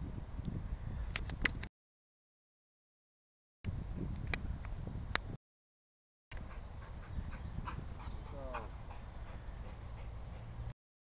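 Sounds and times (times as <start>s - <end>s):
wind rumble on microphone: 0.0s - 1.7s, 3.7s - 5.4s, 6.4s - 10.0s.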